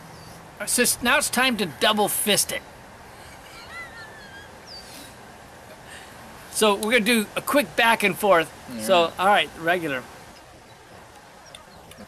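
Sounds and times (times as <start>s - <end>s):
outdoor background hiss: 0.0s - 12.0s
bird chirps: 3.2s - 5.1s.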